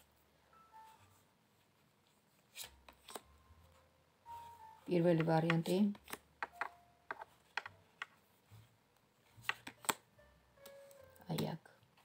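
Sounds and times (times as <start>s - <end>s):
cards tapping on wooden table: 5.2s - 8.1s.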